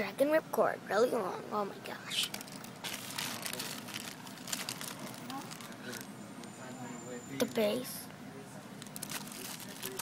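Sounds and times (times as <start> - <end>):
plastic packaging crinkling: 2.2 - 6.1, 8.8 - 10.0.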